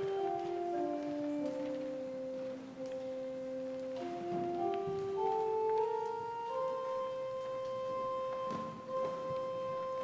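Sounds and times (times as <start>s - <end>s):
church organ held notes: 0.0s - 10.0s.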